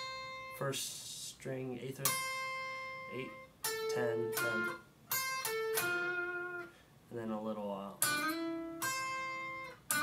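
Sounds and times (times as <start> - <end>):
electric guitar lead notes: 0.0 - 0.7, 2.0 - 6.8, 8.0 - 10.0.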